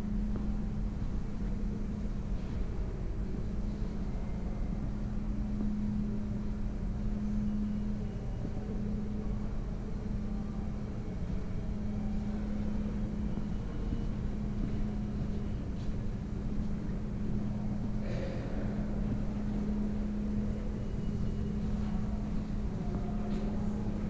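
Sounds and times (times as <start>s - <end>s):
subway station hum and rumble: 0.0s - 24.0s.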